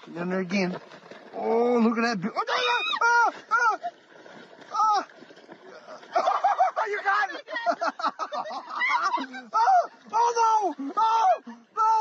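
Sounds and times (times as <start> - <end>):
person yelling in distress: 8.7 - 12.0.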